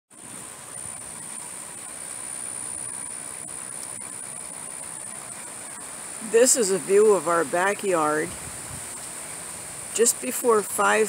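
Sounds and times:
outdoor background noise: 0.1 - 11.0
high-pitched insect trill: 0.4 - 10.3.

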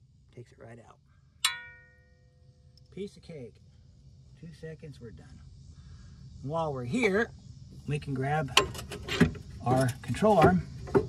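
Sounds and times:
metallic clang: 1.4 - 2.2.

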